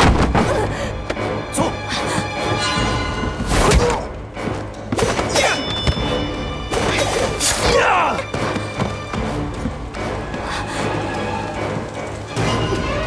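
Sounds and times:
dramatic orchestral score: 0:00.0 - 0:13.0.

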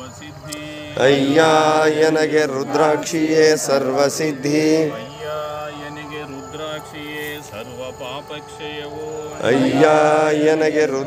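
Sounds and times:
devotional chant on long held notes: 0:00.0 - 0:11.0.

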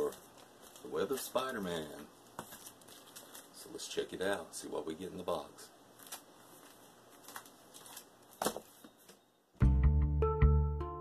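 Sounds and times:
rustling of comic books: 0:00.0 - 0:04.4, 0:05.2 - 0:09.2
music with struck notes: 0:09.6 - 0:11.0.

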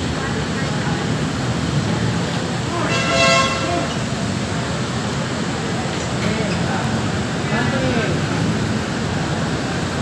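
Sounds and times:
low traffic hum: 0:00.0 - 0:10.0
murmur of crowd: 0:00.0 - 0:10.0.

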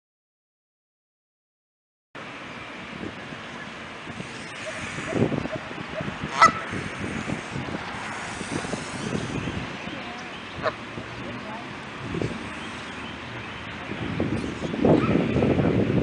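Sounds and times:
goose honking: 0:06.3 - 0:07.6.

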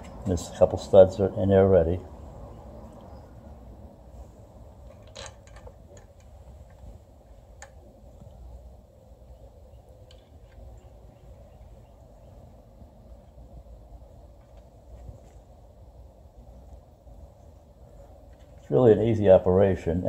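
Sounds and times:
low steady background hum: 0:00.0 - 0:20.0.

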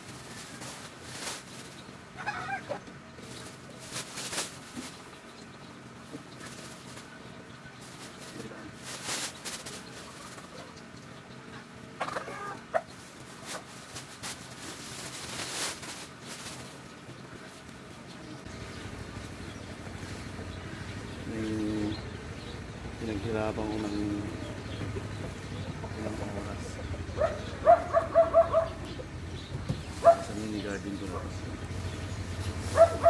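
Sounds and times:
chicken clucking: 0:09.7 - 0:13.7
rice hulls pouring from sack: 0:13.4 - 0:16.8.

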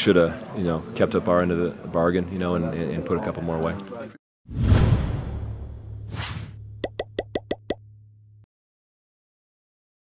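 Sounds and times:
loud whoosh: 0:04.5 - 0:06.8
low hum: 0:05.3 - 0:08.5.

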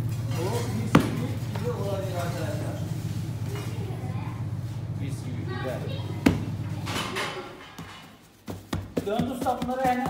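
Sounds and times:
steady low hum: 0:00.0 - 0:09.4.

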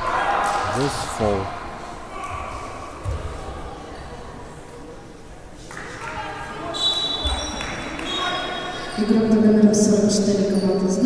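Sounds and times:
players' voices: 0:00.4 - 0:02.2.

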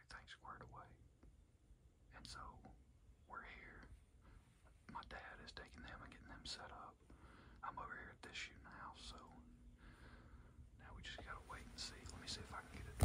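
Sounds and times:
person whispering: 0:00.0 - 0:01.0, 0:02.1 - 0:03.9, 0:04.8 - 0:07.0, 0:07.6 - 0:09.6, 0:10.8 - 0:13.0
faint hum: 0:00.0 - 0:13.0.

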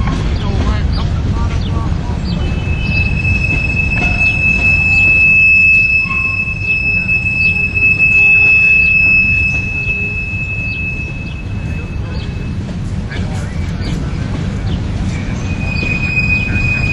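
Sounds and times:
train wheels rumbling on rails: 0:00.0 - 0:16.9
high-pitched wheel squeal: 0:02.3 - 0:16.9.

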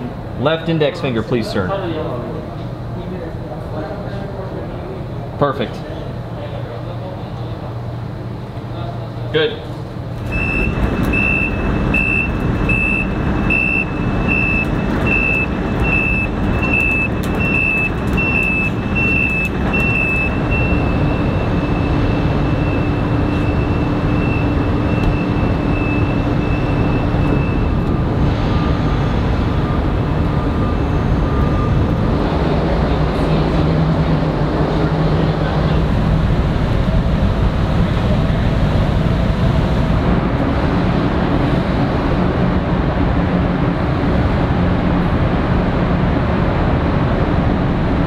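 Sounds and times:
excavator engine and tracks: 0:09.8 - 0:48.0
travel alarm beeping: 0:10.2 - 0:33.0.

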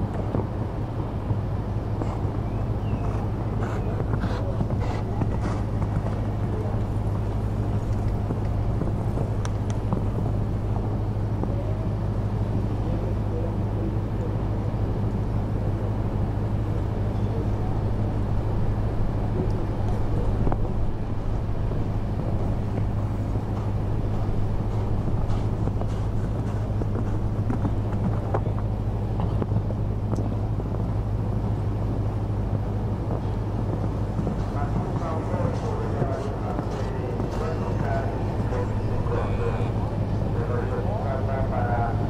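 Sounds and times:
low mechanical hum: 0:00.0 - 0:42.0
outdoor background noise: 0:00.0 - 0:42.0.

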